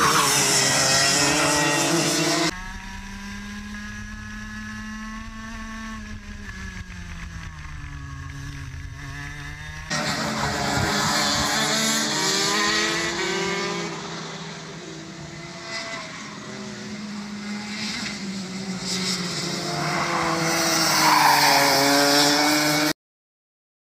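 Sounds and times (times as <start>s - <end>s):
racing kart engines: 0.0s - 22.9s.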